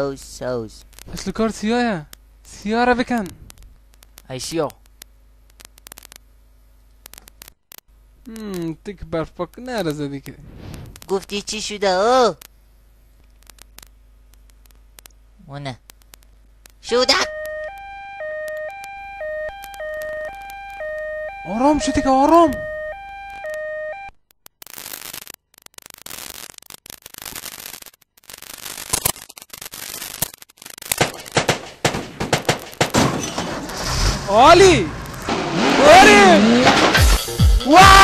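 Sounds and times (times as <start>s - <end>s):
faint clicks: 13.2s - 15.2s, 15.8s - 16.8s
electronic two-note alarm tone: 16.9s - 24.1s
person crying out: 35.8s - 36.6s, 37.6s - 38.0s.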